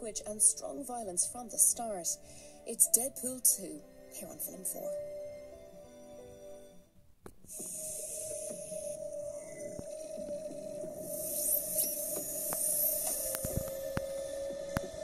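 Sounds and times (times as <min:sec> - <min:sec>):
high airy hiss: 0:07.5 - 0:15.0
steady held tone: 0:07.5 - 0:15.0
clicks: 0:11.4 - 0:15.0.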